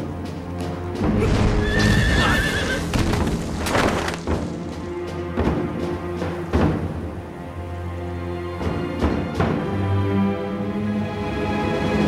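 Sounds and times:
dramatic film score music: 0:00.0 - 0:12.0
horse neighing: 0:01.3 - 0:02.9.

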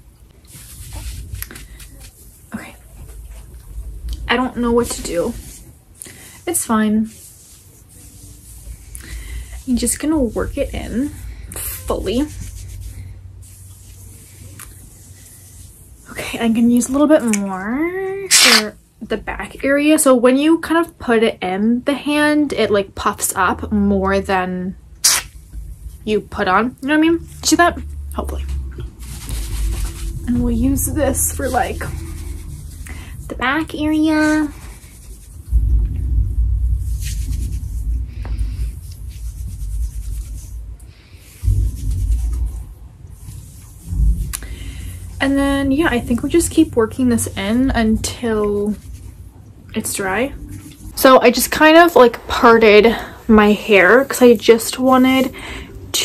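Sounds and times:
fingers rustling through hair: 0:00.0 - 0:05.7, 0:06.5 - 0:18.7, 0:25.0 - 0:56.0
steady low hum: 0:00.0 - 0:19.6, 0:21.4 - 0:56.0
short brushing sound: 0:07.1 - 0:16.0, 0:18.3 - 0:18.7, 0:25.0 - 0:26.0, 0:27.2 - 0:47.6.

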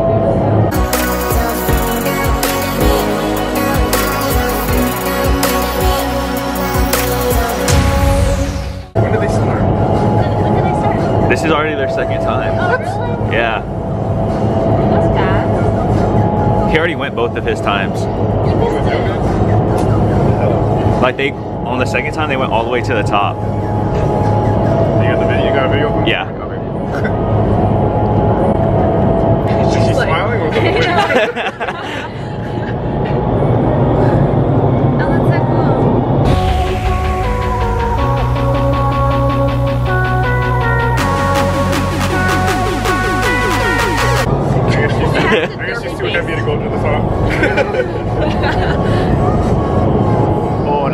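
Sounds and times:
electronic background music: 0:00.7 - 0:12.6, 0:36.2 - 0:44.3
wind tunnel airflow rushing: 0:07.6 - 0:50.9
indistinct voices: 0:31.9 - 0:47.3.

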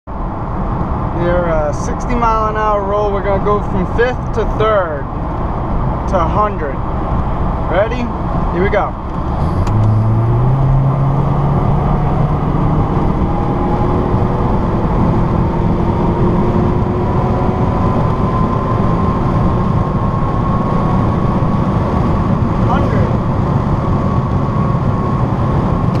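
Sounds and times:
car engine at full throttle: 0:00.1 - 0:26.0
road and wind noise: 0:00.1 - 0:26.0.

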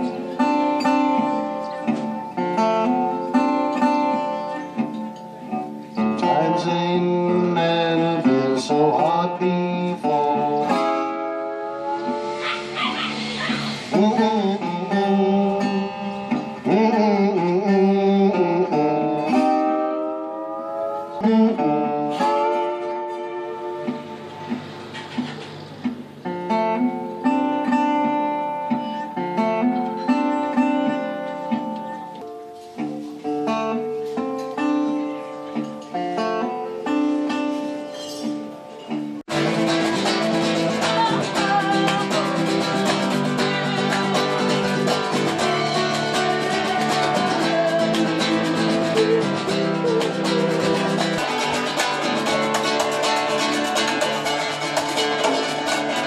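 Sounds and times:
acoustic guitar strummed: 0:00.0 - 0:56.0
resonator guitar playing blues: 0:00.0 - 0:56.0
drum kit: 0:39.2 - 0:56.0.

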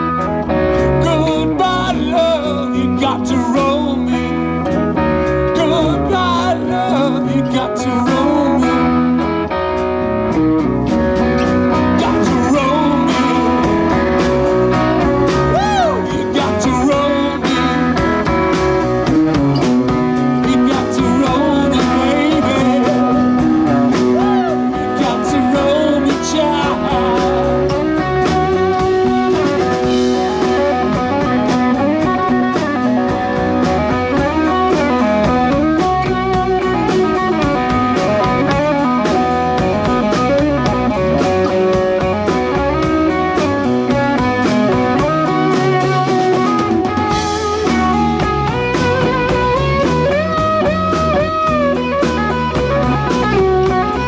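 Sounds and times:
electric guitar with bending notes: 0:00.0 - 0:54.0
live rock band playing: 0:00.0 - 0:54.0.

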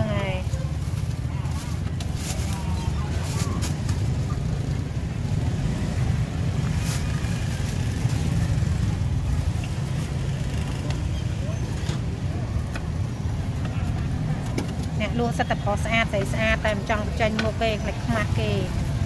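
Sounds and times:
faint voices: 0:00.0 - 0:05.6.

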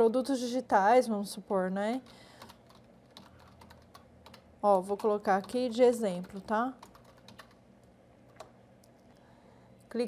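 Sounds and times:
computer keyboard keystrokes: 0:02.4 - 0:05.6, 0:06.2 - 0:07.6, 0:08.3 - 0:09.0.

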